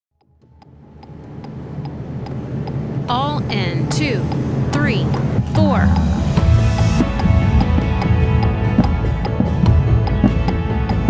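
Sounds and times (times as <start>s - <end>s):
steady low hum: 0.2s - 11.0s
person counting in: 3.1s - 6.4s.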